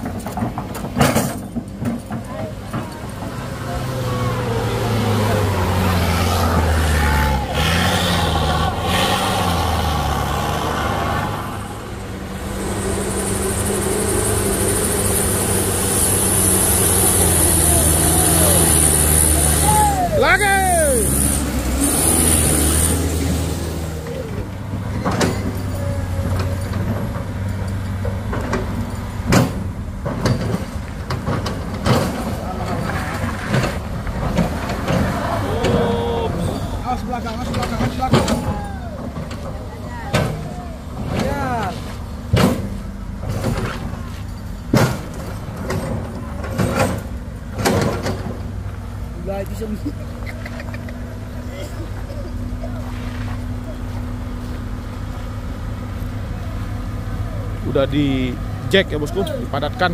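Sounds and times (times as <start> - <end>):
truck engines running low: 0.0 - 59.9
high hiss: 11.4 - 19.6
short falling squeals: 11.4 - 24.5.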